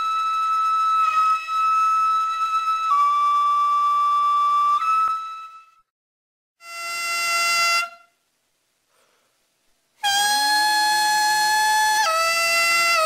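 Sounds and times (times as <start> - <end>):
double-reed pipe held notes: 0.0 - 5.8, 10.0 - 13.0.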